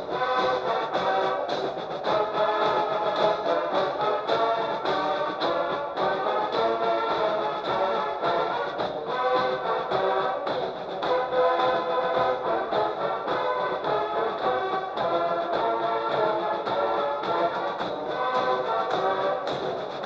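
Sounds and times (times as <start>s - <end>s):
marching band playing a march: 0.0s - 20.0s.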